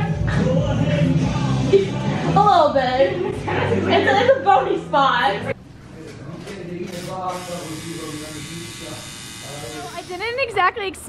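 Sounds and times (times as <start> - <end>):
tattoo machine buzzing: 6.9 - 10.4.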